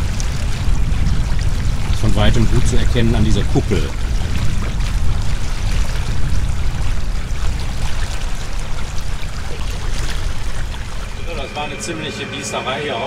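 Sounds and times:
wind rumble on microphone: 0.0s - 11.7s
water splashing along a hull: 0.0s - 13.0s.

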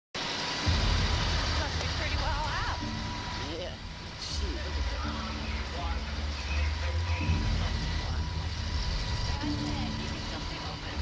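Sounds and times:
steady low rumble: 0.2s - 11.0s
vehicle engine humming: 0.2s - 11.0s
distant voices: 0.3s - 11.0s.

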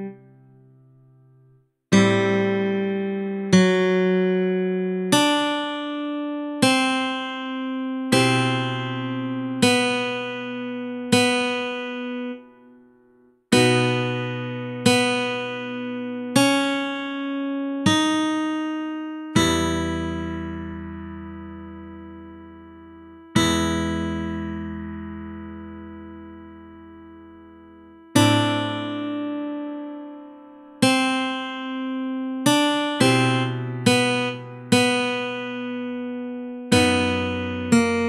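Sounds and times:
guitar plucked notes: 1.9s - 12.8s, 13.5s - 38.0s.

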